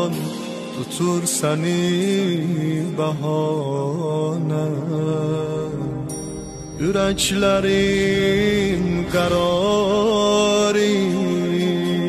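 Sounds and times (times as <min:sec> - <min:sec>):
person singing ornamented chant: 0:00.0 - 0:12.0.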